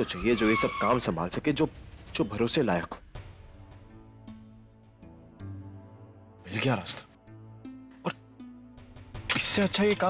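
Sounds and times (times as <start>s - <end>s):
low sustained score music: 0.0s - 10.0s.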